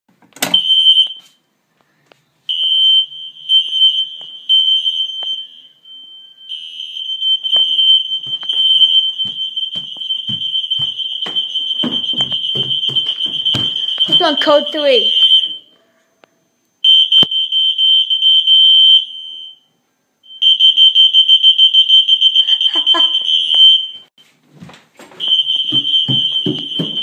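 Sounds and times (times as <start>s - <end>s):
high-pitched fire alarm tone: 0.5s - 1.4s, 2.5s - 24.1s, 25.2s - 27.0s
handling knocks: 25.0s - 27.0s.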